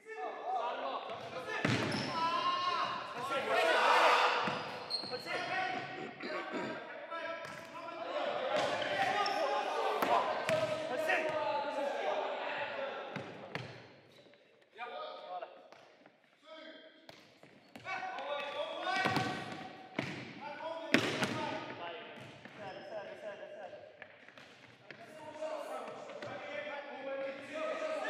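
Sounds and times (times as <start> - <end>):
players calling: 0.0 - 13.7.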